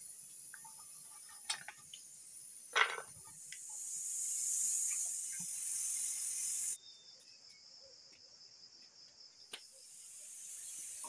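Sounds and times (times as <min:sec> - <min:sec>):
kettle steam hissing: 0:00.0 - 0:06.8, 0:09.6 - 0:11.0
cricket trilling: 0:00.0 - 0:11.0.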